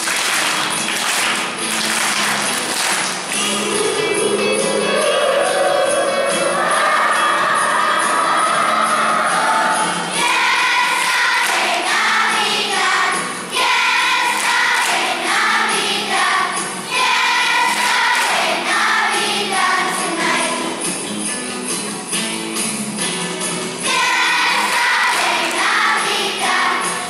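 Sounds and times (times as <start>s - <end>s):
musical accompaniment with light beat: 0.0s - 5.2s, 9.2s - 27.0s
children's choir singing: 0.0s - 21.1s, 23.7s - 27.0s.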